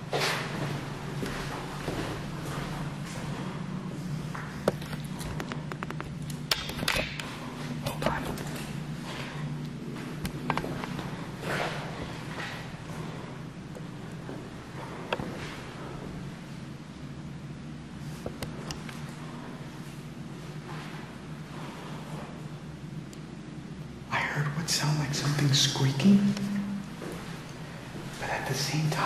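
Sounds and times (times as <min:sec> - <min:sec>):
footsteps on tiled floor: 0:00.0 - 0:03.6
steady low hum: 0:00.0 - 0:29.0
sharp clicks and knocks: 0:04.6 - 0:07.3.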